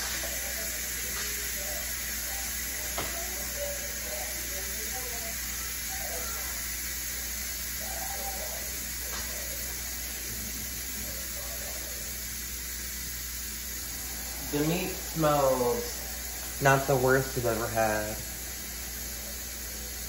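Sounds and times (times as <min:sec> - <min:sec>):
faint indistinct voices: 0:00.0 - 0:16.9, 0:18.0 - 0:20.0
kitchen room tone hiss and hum: 0:00.0 - 0:20.0.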